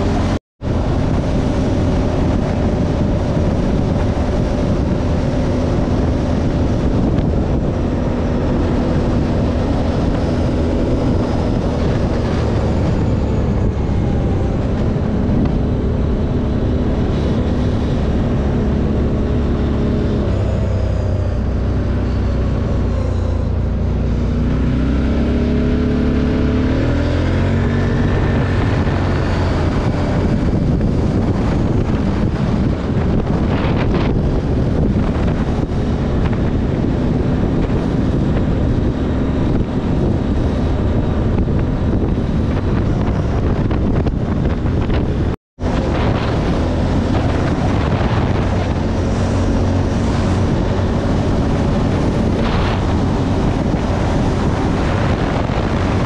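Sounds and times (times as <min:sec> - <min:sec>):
wind rushing over microphone: 0:00.0 - 0:56.0
motorcycle engine running: 0:25.0 - 0:56.0.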